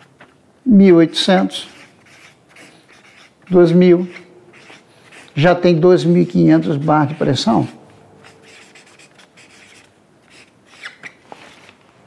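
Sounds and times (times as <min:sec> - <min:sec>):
marker scratching on paper: 0:01.2 - 0:11.2.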